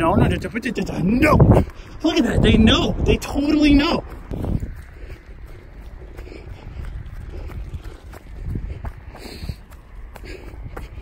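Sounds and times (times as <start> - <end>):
running footsteps on grass: 0.0 - 11.0.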